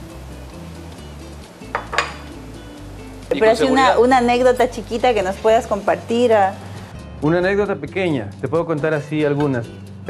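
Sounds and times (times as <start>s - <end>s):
background music: 0.0s - 10.0s
spoon clinking china: 1.7s - 2.4s.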